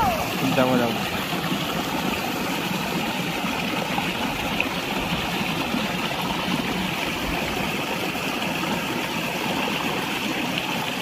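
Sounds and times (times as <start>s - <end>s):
water rushing in a ditch: 0.0s - 11.0s.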